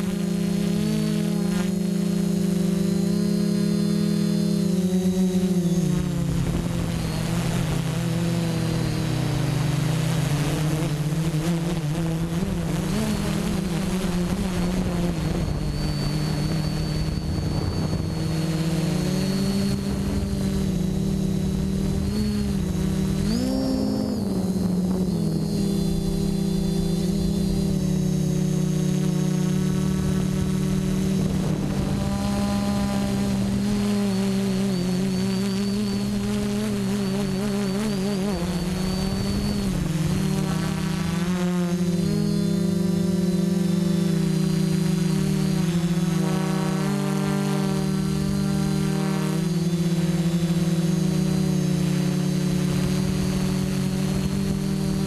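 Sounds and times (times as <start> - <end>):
drone propellers humming: 0.0 - 55.0.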